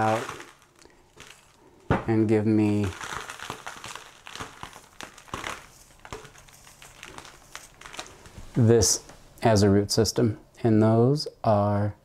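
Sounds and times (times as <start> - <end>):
dry soil crumbling and crackling: 0.0 - 9.1.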